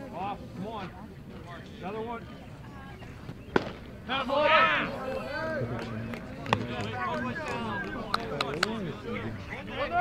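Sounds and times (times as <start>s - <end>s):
spectators shouting: 6.5s - 8.3s.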